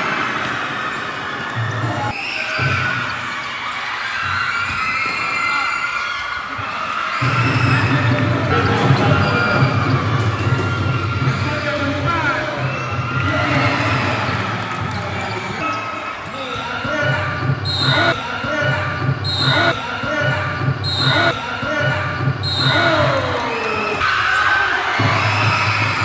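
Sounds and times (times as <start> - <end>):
players' voices: 5.4 - 26.0
sneakers squeaking: 7.1 - 24.3.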